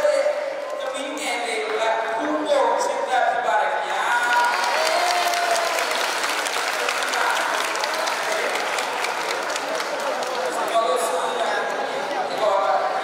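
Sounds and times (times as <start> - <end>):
voices over clapping: 3.9 - 12.6
children applauding: 4.1 - 11.1.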